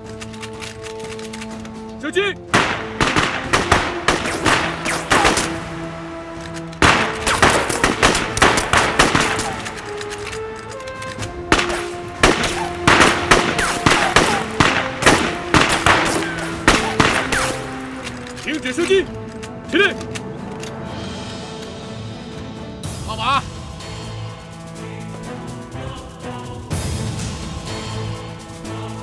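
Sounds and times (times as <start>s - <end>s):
background music with held notes: 0.0s - 29.0s
rifles firing: 2.5s - 19.4s.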